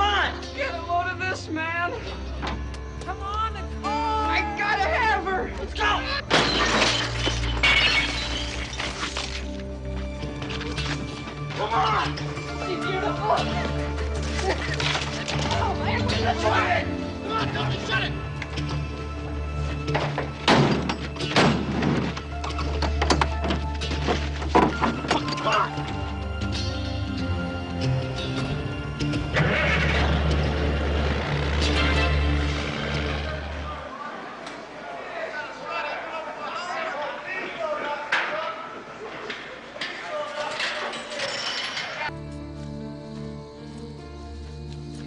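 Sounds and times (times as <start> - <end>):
metal trailer doors slamming shut: 19.9 - 25.7
low music score: 42.1 - 45.0.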